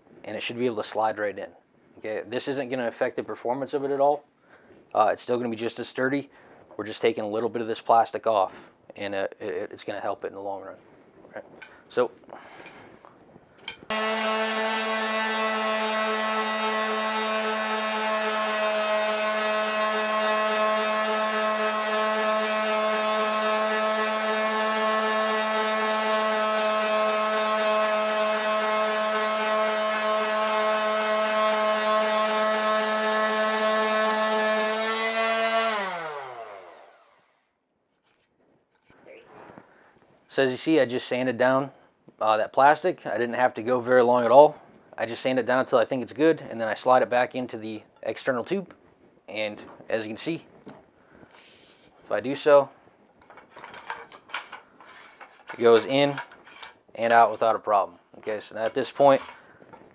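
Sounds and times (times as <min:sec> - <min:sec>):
electric orbital sander: 0:13.9 - 0:37.3.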